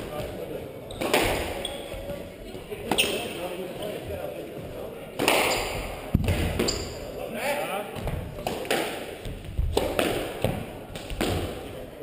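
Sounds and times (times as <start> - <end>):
squash ball hitting rackets and walls: 0.0 - 2.2, 2.8 - 4.0, 5.1 - 7.1, 7.9 - 11.8
shoes squeaking on wooden floor: 0.8 - 4.7, 5.4 - 6.0, 6.6 - 7.1.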